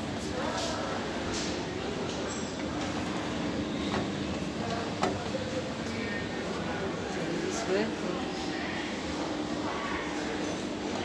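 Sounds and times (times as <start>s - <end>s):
indoor public space hum: 0.0s - 11.0s.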